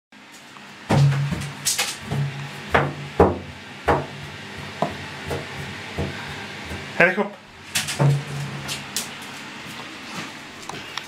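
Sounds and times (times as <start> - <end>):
low steady hum: 0.6 - 11.0
dog claws knocking on bathtub: 2.1 - 6.9.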